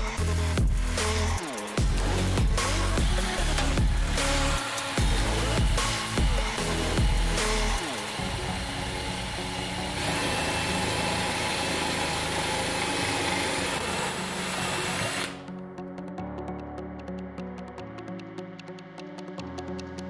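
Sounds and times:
electronic background music: 0:00.0 - 0:20.0
cordless drill boring metal: 0:01.9 - 0:15.5.

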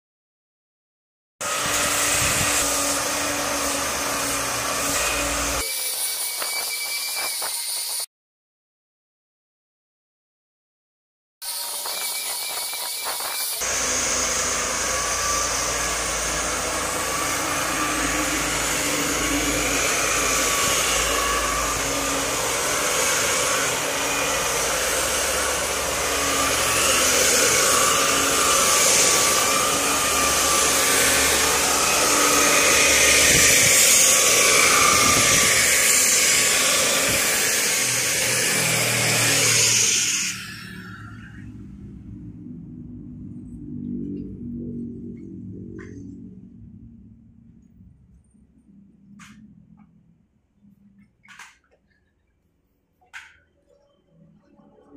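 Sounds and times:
electric hand planer on wood: 0:01.4 - 0:05.7, 0:11.5 - 0:40.4.

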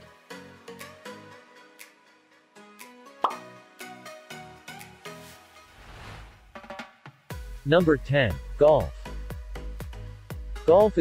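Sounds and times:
sharp pop: 0:03.2 - 0:03.4.

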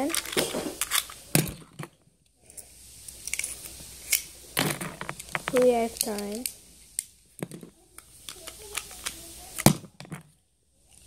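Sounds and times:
plastic toy parts clicking: 0:00.0 - 0:01.9, 0:03.1 - 0:11.0.

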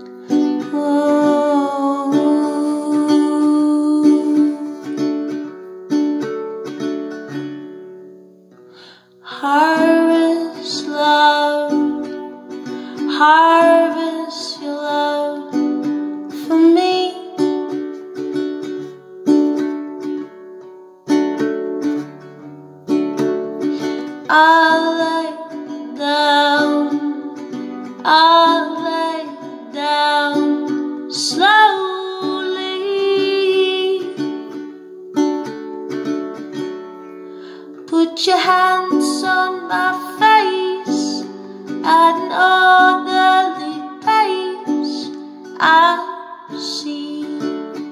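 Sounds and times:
woman singing: 0:00.0 - 0:05.4, 0:09.2 - 0:18.3, 0:23.8 - 0:34.8, 0:37.7 - 0:47.9
classical guitar chords: 0:00.0 - 0:47.9.

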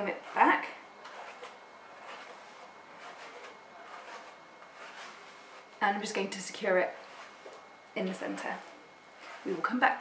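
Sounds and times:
hairbrush swishing through hair: 0:00.0 - 0:10.0.

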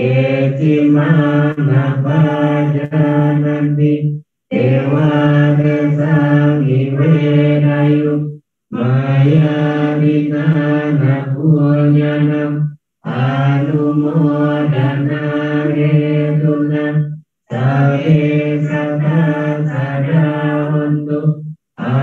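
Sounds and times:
person chanting into a microphone: 0:00.0 - 0:22.0.

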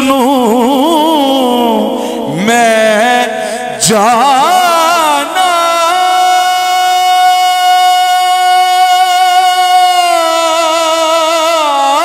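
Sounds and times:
man singing a long note: 0:00.0 - 0:12.0.

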